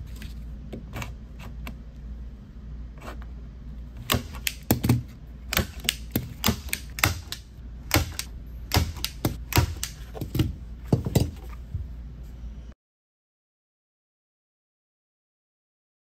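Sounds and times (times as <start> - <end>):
staple gun snapping: 4.0 - 10.0.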